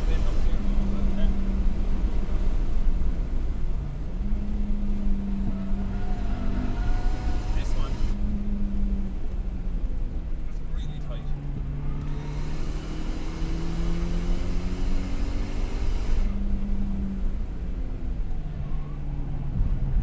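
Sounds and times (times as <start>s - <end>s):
car engine: 0.0s - 20.0s
road and wind noise: 0.0s - 20.0s.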